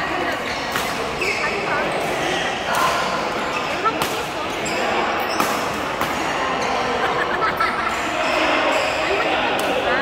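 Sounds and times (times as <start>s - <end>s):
court noise: 0.0s - 10.0s
players' voices: 0.0s - 10.0s
racket striking shuttlecock: 3.9s - 4.3s, 5.3s - 6.2s.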